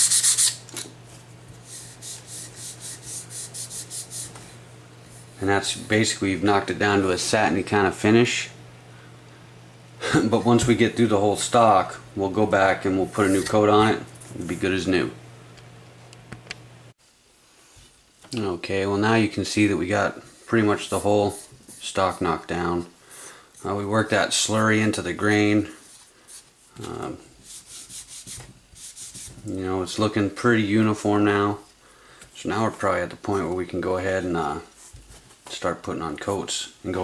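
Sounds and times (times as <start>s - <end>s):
sandpaper rubbing on wood: 0.0s - 0.6s, 1.6s - 4.4s, 13.0s - 13.7s, 27.4s - 29.4s
cloth rubbing strokes: 1.0s - 5.6s, 12.8s - 14.7s.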